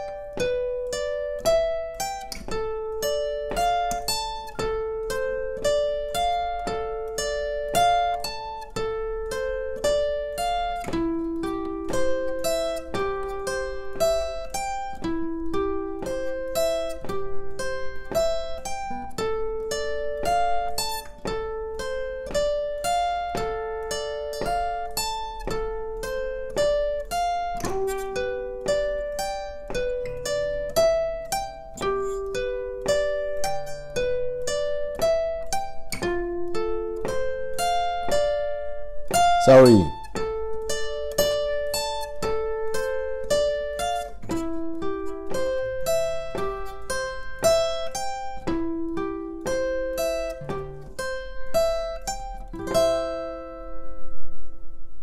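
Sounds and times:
acoustic guitar arpeggio: 0.0 - 54.7.

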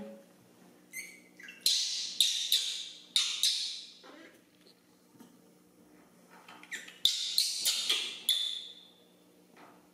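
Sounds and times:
baby monkey screaming: 0.9 - 3.9, 6.7 - 8.8.

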